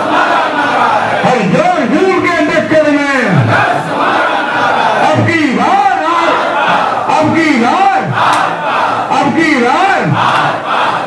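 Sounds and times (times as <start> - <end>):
crowd of men chanting slogan: 0.0 - 1.3, 3.3 - 11.0.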